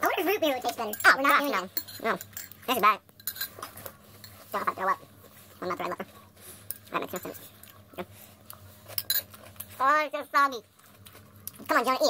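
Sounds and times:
metal spoon clinking bowl: 0.6 - 4.5, 6.7 - 7.5, 8.9 - 9.7.

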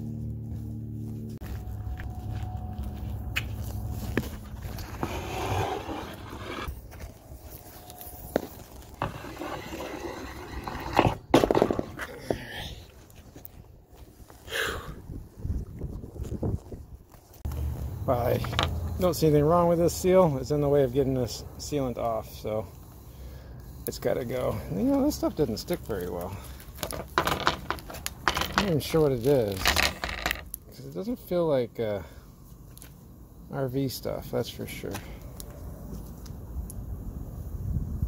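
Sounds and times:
low hum: 0.0 - 12.0
handling scuffs and rustles: 0.1 - 9.4.

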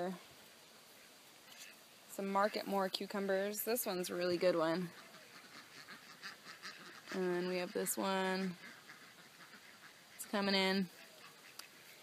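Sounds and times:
faint animal calls: 4.2 - 12.0.

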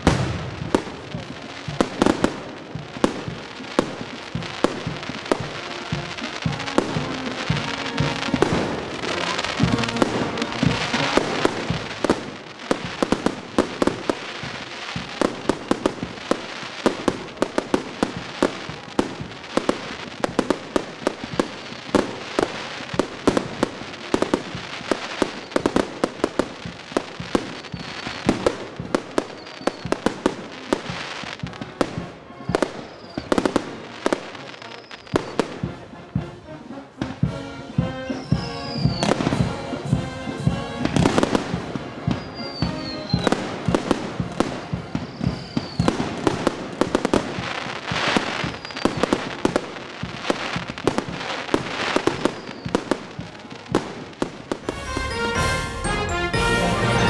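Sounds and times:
fireworks bangs and crackles: 0.0 - 57.0
music: 0.0 - 57.0.

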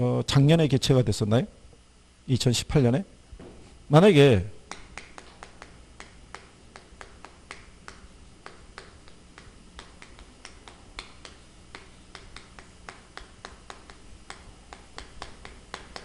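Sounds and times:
low steady hum: 0.0 - 16.0
chalk tapping on chalkboard: 4.7 - 16.0.

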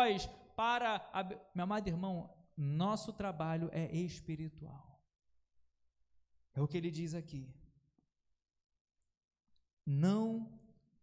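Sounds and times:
man preaching: 0.0 - 5.0, 6.5 - 7.6, 9.9 - 10.7.

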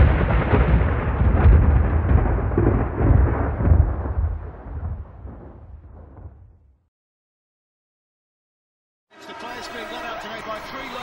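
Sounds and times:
long deep rumble: 0.0 - 6.7.

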